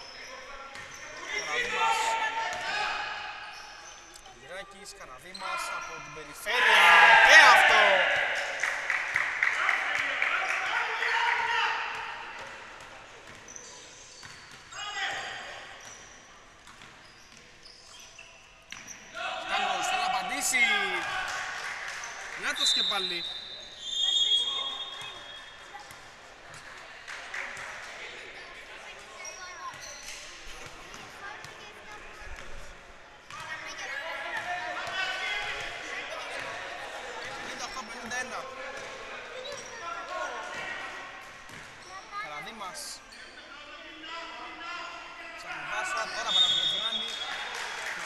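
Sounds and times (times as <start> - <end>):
referee's whistle: 22.4 - 25.6, 45.9 - 47.5.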